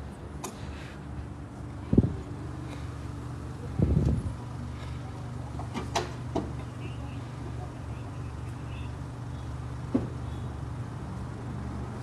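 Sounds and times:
vehicle engines idling: 0.0 - 12.0.

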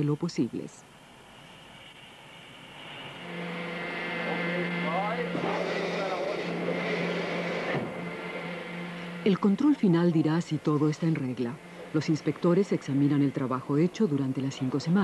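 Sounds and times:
mechanical hum with hiss: 0.0 - 15.0.

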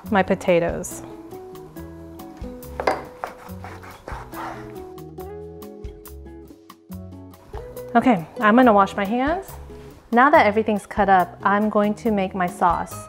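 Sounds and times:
background music: 0.0 - 13.0
knife knocking cutting board: 2.8 - 3.5.

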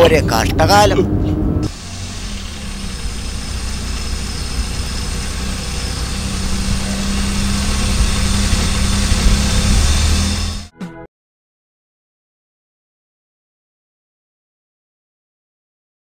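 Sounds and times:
car engine running: 0.0 - 10.7
steady hum note: 0.0 - 10.7
road hiss: 1.7 - 10.6.

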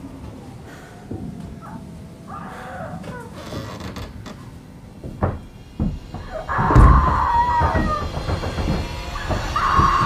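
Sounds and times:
creaking with falling squeal: 2.4 - 4.5, 6.1 - 10.0.

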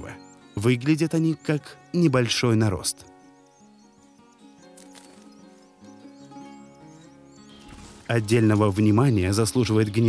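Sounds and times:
small birds chirping: 0.0 - 10.0
soft background music: 0.0 - 10.0.

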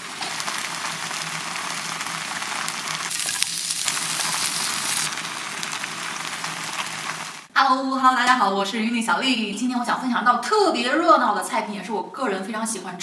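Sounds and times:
fish sizzling in a hot pot: 0.0 - 7.5.

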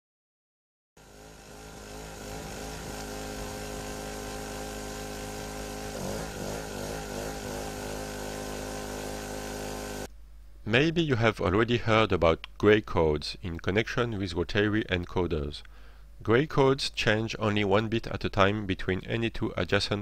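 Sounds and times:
generator engine running: 1.0 - 10.1.

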